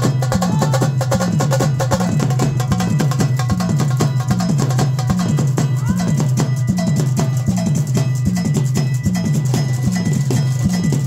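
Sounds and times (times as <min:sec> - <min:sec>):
dhol drums pounding: 0:00.0 - 0:11.0
small drums ringing strokes: 0:00.0 - 0:11.0.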